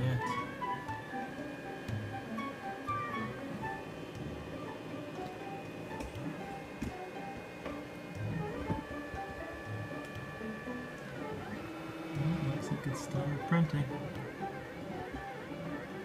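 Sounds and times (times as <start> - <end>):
stepper motor whine: 0.0 - 16.0
steady high tone sliding down: 0.2 - 6.7.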